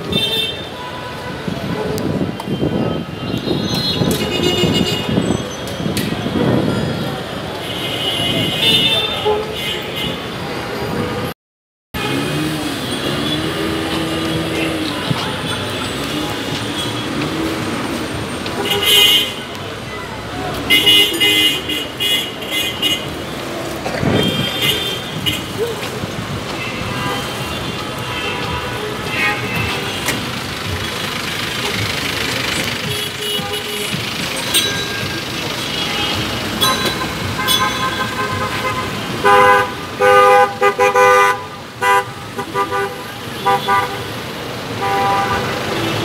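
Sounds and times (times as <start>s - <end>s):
hubbub of voices: 0.0s - 3.5s, 4.6s - 11.3s, 13.9s - 40.0s
busy street traffic: 0.0s - 46.0s.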